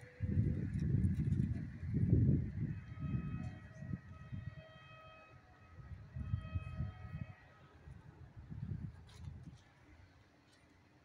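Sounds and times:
wind buffeting microphone: 0:00.0 - 0:04.6, 0:05.8 - 0:09.6.

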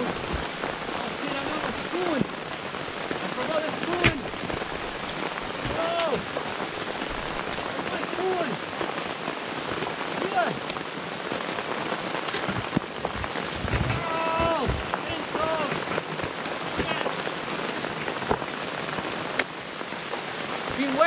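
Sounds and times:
steady rain falling: 0:00.0 - 0:21.0.

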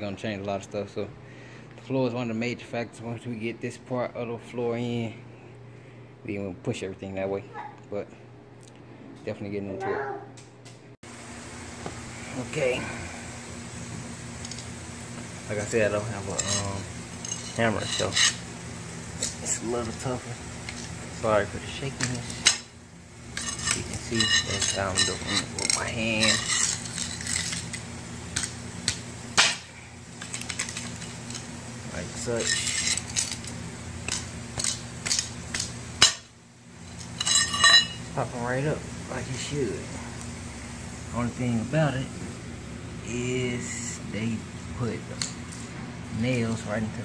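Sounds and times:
room noise hum and hiss: 0:00.0 - 0:47.0.

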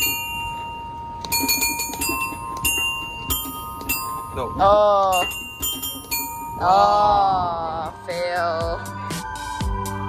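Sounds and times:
bell-like chime tones: 0:00.0 - 0:07.3
steady held tone: 0:00.0 - 0:09.6.

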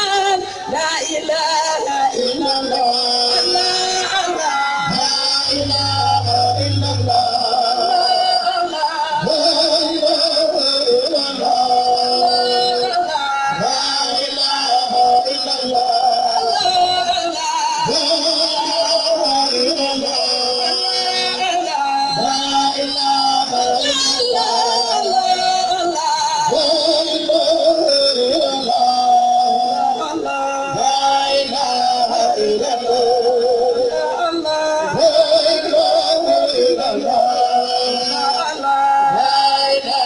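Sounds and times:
person singing long wavering notes: 0:04.8 - 0:08.6
musical accompaniment: 0:05.4 - 0:07.6.

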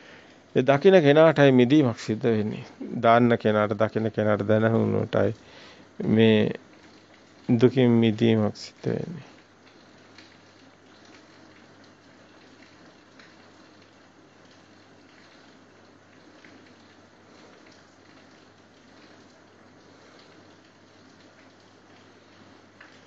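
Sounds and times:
faint steady hiss: 0:00.0 - 0:23.0
faint ticks: 0:08.7 - 0:23.0.

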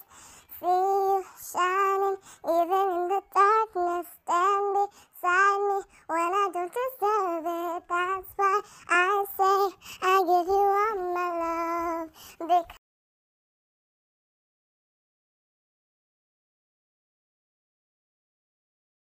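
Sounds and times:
sped-up high-pitched singing: 0:00.0 - 0:12.8.

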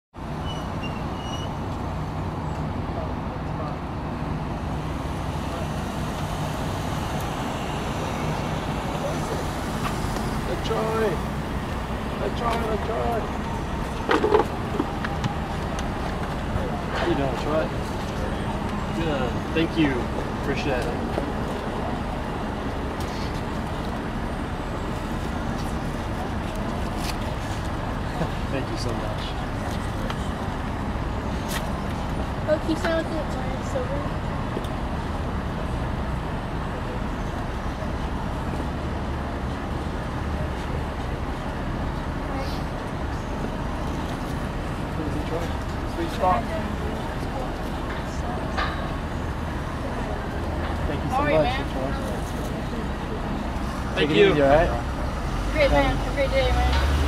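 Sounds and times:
road traffic: 0:00.1 - 0:57.0
vehicle engine idling: 0:00.3 - 0:57.0.

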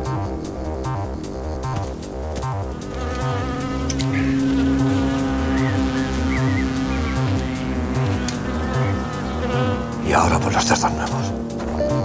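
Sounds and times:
fly buzzing: 0:00.0 - 0:12.0
music with pulsing low beat: 0:00.0 - 0:12.0.

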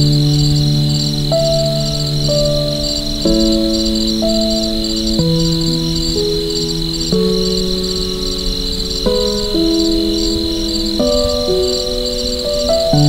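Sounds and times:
crickets chirping: 0:00.0 - 0:13.0
soft slow music: 0:00.0 - 0:13.0.

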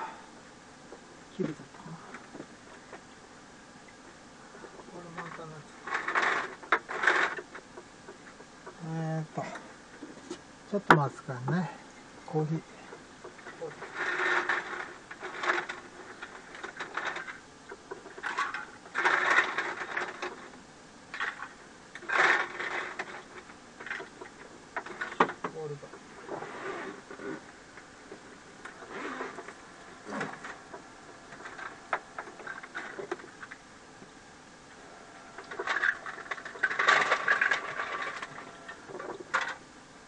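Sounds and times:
scattered clicks and knocks: 0:04.7 - 0:08.8, 0:35.4 - 0:39.6
ice cubes clattering: 0:35.5 - 0:38.8.

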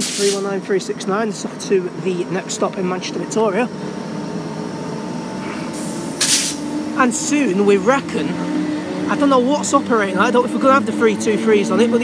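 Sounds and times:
burst of hiss: 0:00.0 - 0:00.4, 0:05.7 - 0:06.6
electric train humming: 0:00.0 - 0:12.0.

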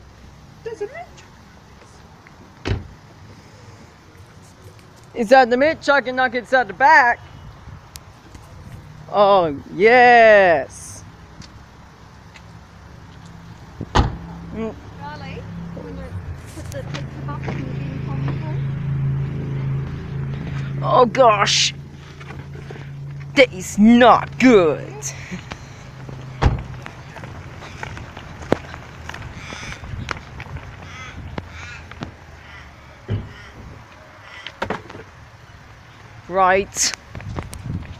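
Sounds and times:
vehicle engine running: 0:11.1 - 0:34.0
heavy thump: 0:13.8 - 0:14.3, 0:26.4 - 0:26.8
footsteps: 0:16.0 - 0:20.8, 0:21.7 - 0:23.4, 0:25.2 - 0:32.2.

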